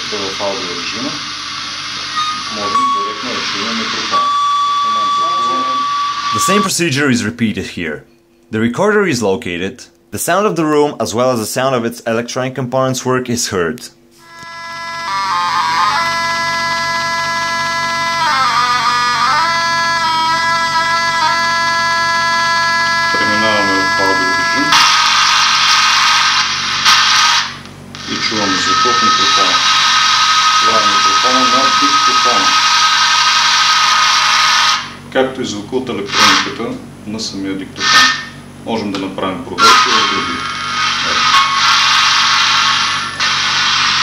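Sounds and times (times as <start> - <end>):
loud hiss with steady whine: 0.0 - 6.9, 14.1 - 35.1, 36.0 - 36.6, 39.4 - 44.0
steady electronic tone: 0.0 - 6.9, 14.2 - 35.0, 39.5 - 44.0.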